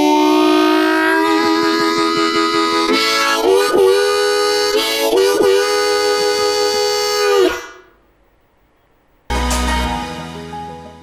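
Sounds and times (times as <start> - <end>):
harmonica chord bending down: 0.0 - 8.0, 9.3 - 11.0.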